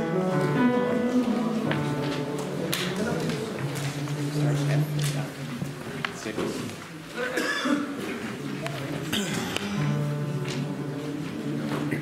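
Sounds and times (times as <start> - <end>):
choir members talking: 0.2 - 12.0
person coughing: 7.2 - 8.0.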